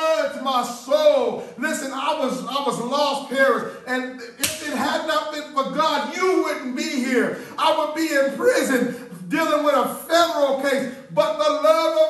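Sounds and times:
man preaching: 0.0s - 12.0s
sharp slap: 4.4s - 4.9s.

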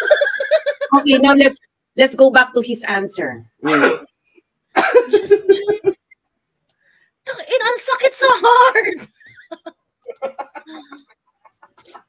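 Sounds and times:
people laughing over video call: 0.0s - 1.0s, 4.8s - 6.1s, 9.1s - 12.0s.

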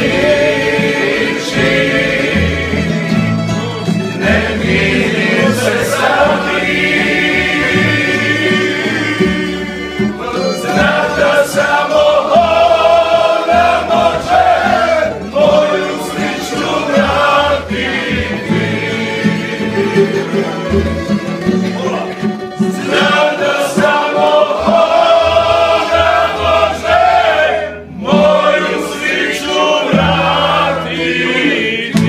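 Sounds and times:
voices singing together: 0.0s - 21.6s, 22.4s - 32.0s
plucked double bass: 0.0s - 32.0s
strummed acoustic guitars: 0.0s - 32.0s.

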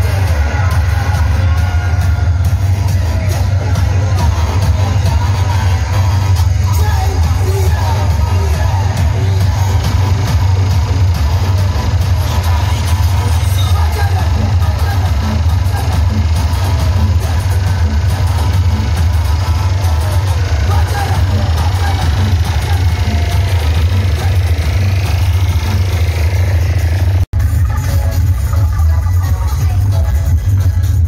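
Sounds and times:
dance music with heavy bass: 0.0s - 31.0s.

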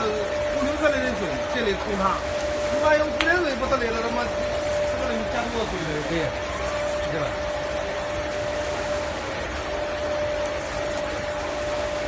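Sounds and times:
constant hum-like tone: 0.0s - 12.0s
drum sieve machine running: 0.0s - 12.0s
water flowing: 0.0s - 12.0s.

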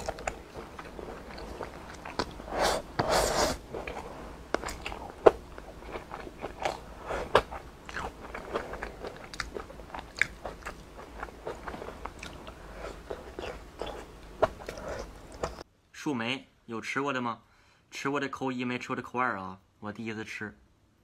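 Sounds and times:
person chewing food: 0.0s - 15.6s.

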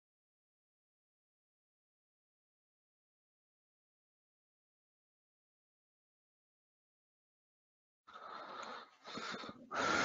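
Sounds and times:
breathing close to microphone: 8.1s - 10.0s.

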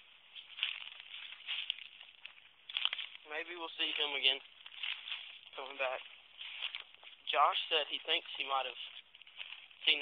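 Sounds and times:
brush rustling and crackling: 0.0s - 10.0s.

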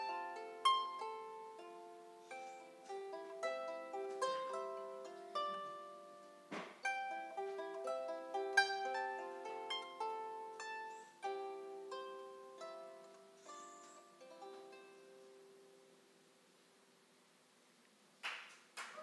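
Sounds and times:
solo harp melody: 0.0s - 16.0s.

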